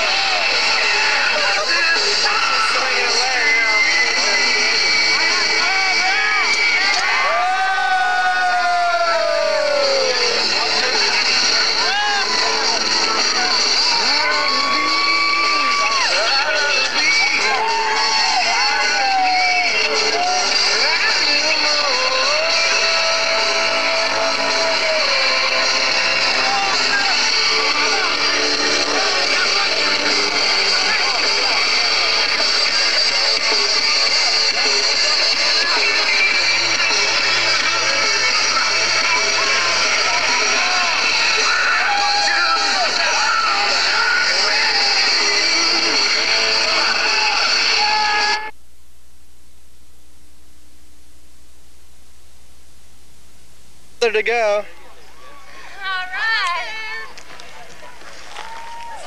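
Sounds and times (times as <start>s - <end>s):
crowd talking and shouting: 0.0s - 48.6s, 54.0s - 59.0s
loud dance music: 0.0s - 48.6s, 55.7s - 57.1s
faint tape hiss: 48.4s - 59.0s.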